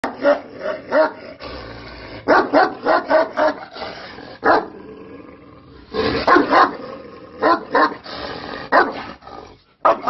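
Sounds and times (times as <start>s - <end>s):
dog barking: 0.0s - 1.2s, 2.3s - 3.6s, 4.4s - 4.7s, 6.2s - 6.8s, 7.4s - 8.0s, 8.7s - 9.1s.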